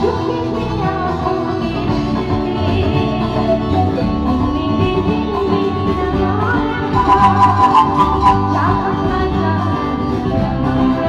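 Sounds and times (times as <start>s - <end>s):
live band music over loudspeakers: 0.0s - 11.0s.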